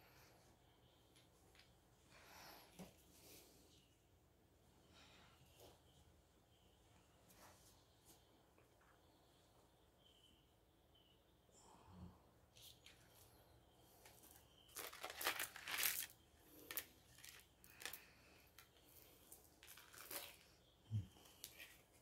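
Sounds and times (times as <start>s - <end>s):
faint rustling and crinkling: 0.0s - 9.8s, 12.5s - 22.0s.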